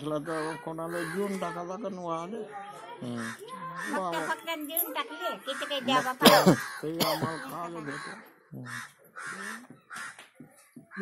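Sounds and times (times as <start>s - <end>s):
crow cawing: 0.1s - 1.6s, 3.2s - 4.5s, 5.4s - 11.0s.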